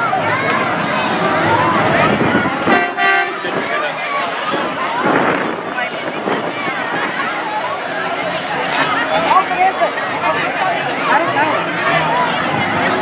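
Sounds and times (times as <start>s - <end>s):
crowd chatter: 0.0s - 13.0s
truck horn blast: 2.6s - 3.6s.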